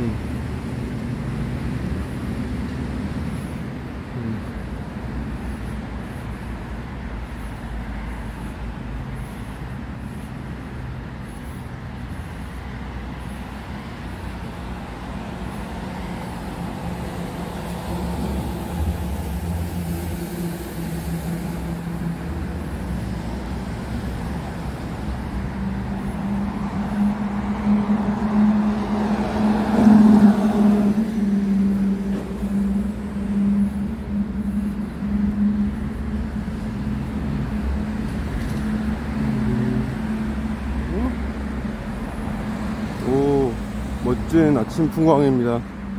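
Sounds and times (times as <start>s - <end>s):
road traffic rumbling: 0.0s - 45.9s.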